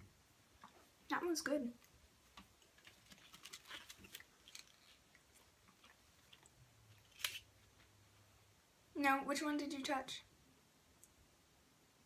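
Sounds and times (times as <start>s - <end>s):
faint chewing: 1.8s - 7.4s.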